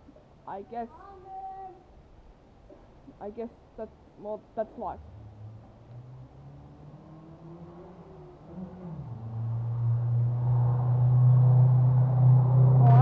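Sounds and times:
vehicle engine humming: 5.0 - 13.0.

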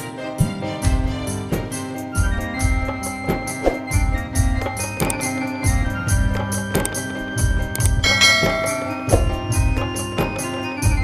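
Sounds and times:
electronic keyboard melody: 0.0 - 11.0
keyboard drum rhythm: 0.0 - 11.0.

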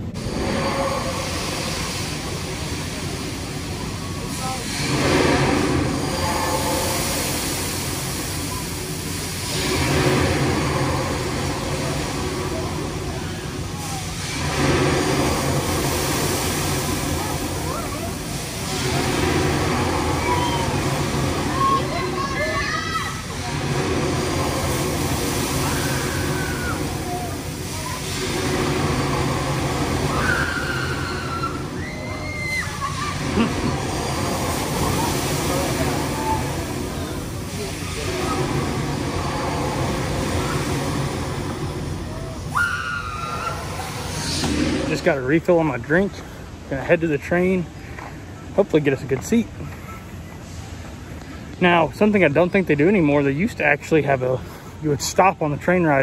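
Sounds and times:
rush of air from swinging ride: 0.0 - 56.0
riders' voices and screams: 0.1 - 45.1.

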